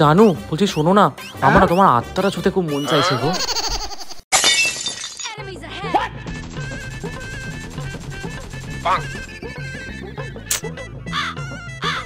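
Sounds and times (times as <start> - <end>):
person speaking: 1.4 - 3.4
glass shattering: 4.3 - 5.4.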